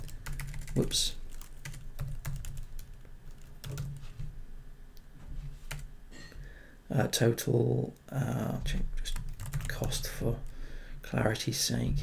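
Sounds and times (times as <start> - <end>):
typing on computer keyboard: 0.0 - 4.0, 9.0 - 10.0.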